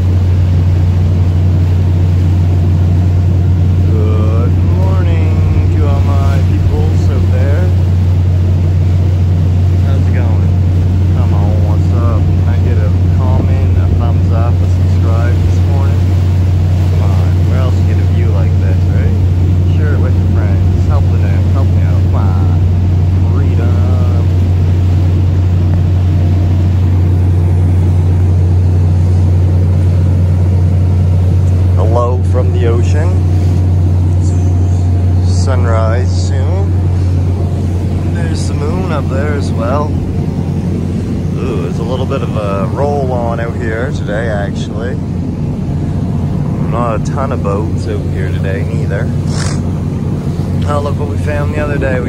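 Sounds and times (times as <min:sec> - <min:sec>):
boat engine droning: 0:00.0 - 0:52.0
water washing along hull: 0:00.0 - 0:52.0.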